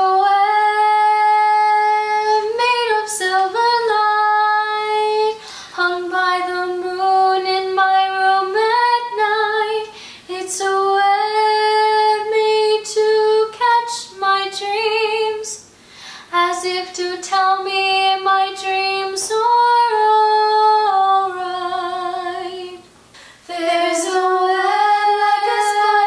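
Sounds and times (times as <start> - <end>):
singer breathing: 5.4 - 5.8, 9.9 - 10.3, 15.8 - 16.3, 23.1 - 23.5.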